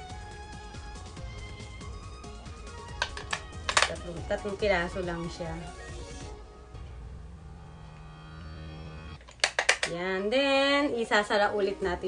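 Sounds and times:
faint background music: 0:00.0 - 0:12.0
sharp plastic clicks: 0:03.0 - 0:04.0, 0:09.2 - 0:10.0.

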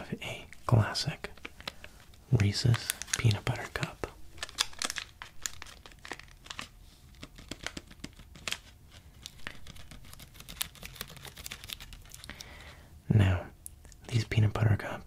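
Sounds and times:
plastic wrapper crinkling: 0:00.5 - 0:12.7
wrapper crackles and clicks: 0:01.2 - 0:12.7.

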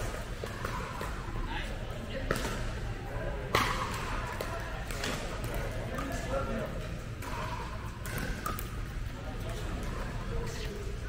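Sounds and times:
paddles hitting plastic ball: 0:02.2 - 0:02.7, 0:03.5 - 0:07.4.

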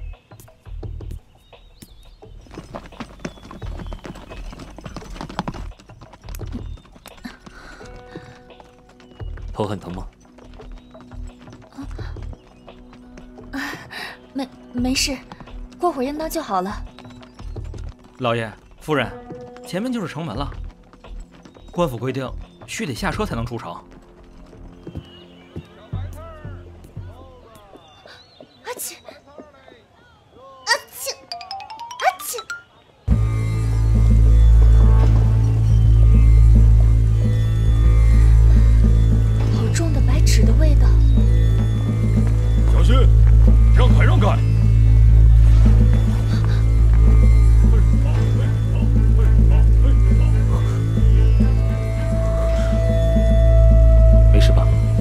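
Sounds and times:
background music: 0:00.0 - 0:29.2, 0:30.7 - 0:55.0
horse hooves clip-clopping: 0:00.3 - 0:29.6, 0:34.0 - 0:54.6.

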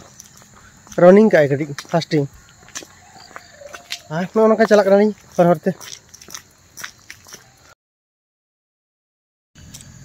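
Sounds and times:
crunching footsteps: 0:00.0 - 0:07.8.

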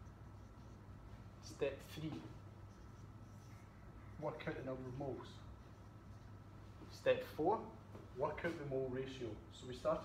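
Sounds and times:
marker scratching on whiteboard: 0:00.0 - 0:07.0
low steady hum: 0:00.0 - 0:10.0.

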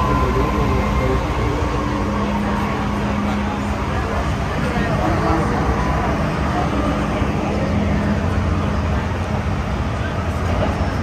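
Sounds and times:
train wheels rumbling on rail: 0:00.0 - 0:11.0.

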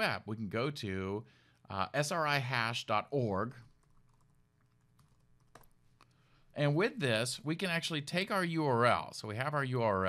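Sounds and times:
keyboard keystrokes: 0:03.8 - 0:05.8.

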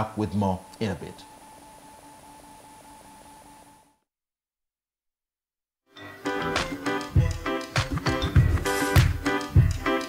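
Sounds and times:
pulsing electrical hum: 0:00.0 - 0:04.0
faint high whine: 0:00.0 - 0:04.1.

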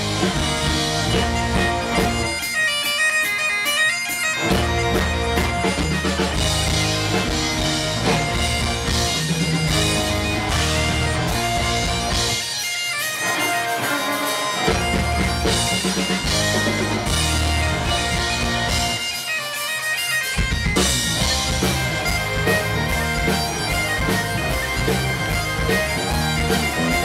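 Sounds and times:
drum kit: 0:00.0 - 0:03.0, 0:04.4 - 0:12.6, 0:13.2 - 0:27.0
bagpipes: 0:00.0 - 0:27.0
electric guitar: 0:00.0 - 0:27.0
fiddle: 0:00.0 - 0:27.0.

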